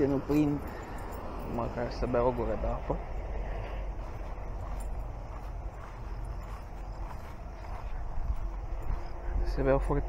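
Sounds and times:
footsteps through tall grass: 0.0 - 10.0
steady low rumble: 0.0 - 10.0.

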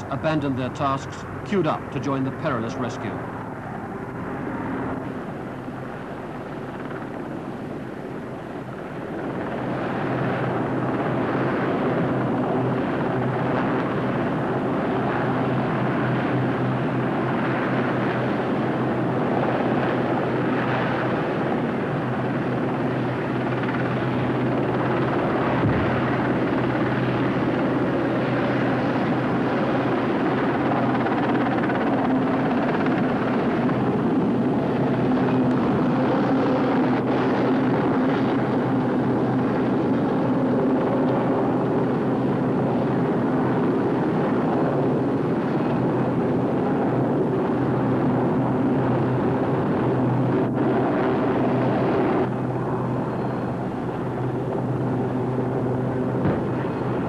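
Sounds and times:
helicopter rotor and engine: 0.0 - 57.0.

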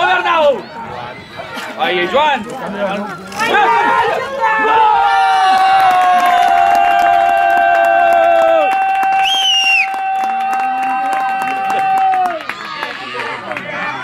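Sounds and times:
spectators' drawn-out goal shout: 0.0 - 2.4, 3.4 - 14.0.

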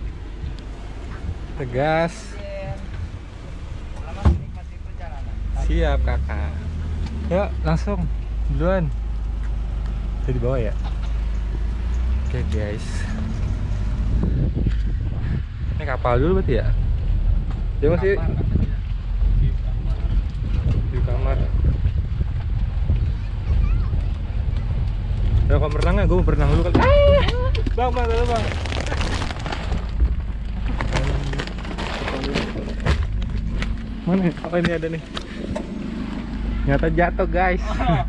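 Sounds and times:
vehicle low rumble: 0.0 - 38.0
wind on microphone: 13.2 - 30.4
plastic wrappers crinkling: 27.8 - 33.2.

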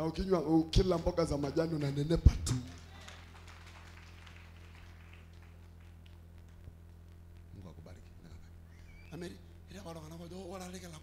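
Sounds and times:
low hum from sound system: 0.0 - 11.0.

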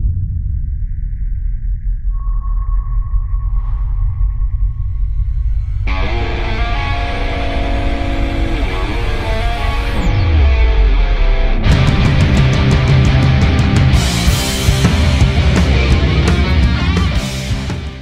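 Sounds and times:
deep low drone: 0.0 - 18.0
heavy bass line: 0.0 - 18.0
steady high tone: 2.1 - 10.8
drums: 5.0 - 18.0
electric guitar: 5.8 - 18.0
heavy rock music: 5.8 - 18.0.

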